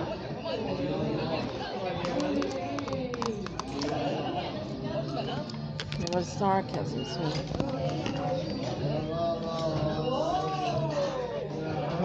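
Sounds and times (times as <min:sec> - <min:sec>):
overlapping people talking: 0:00.0 - 0:12.0.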